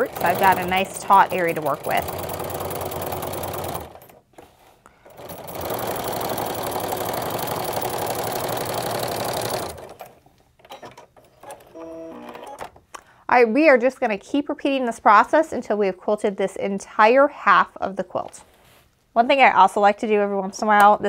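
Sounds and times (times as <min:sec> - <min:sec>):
sewing machine stitching: 0:00.0 - 0:12.7.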